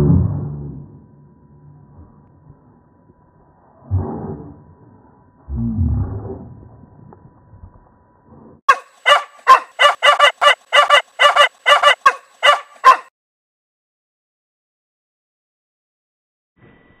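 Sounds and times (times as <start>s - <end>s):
low rumble: 0.0s - 8.6s
dog barking: 8.7s - 13.1s.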